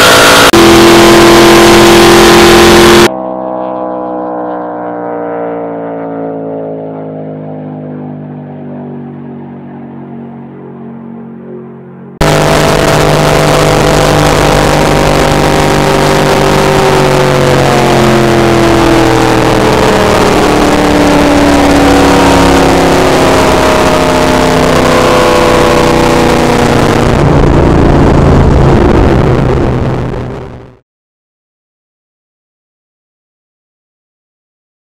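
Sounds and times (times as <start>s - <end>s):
wind roar: 0.0s - 3.1s, 12.2s - 30.8s
car engine at speed: 0.0s - 30.8s.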